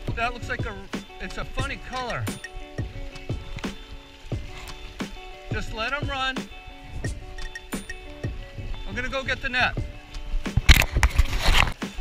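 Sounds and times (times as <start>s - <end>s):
legs wading through river: 0.0s - 12.0s.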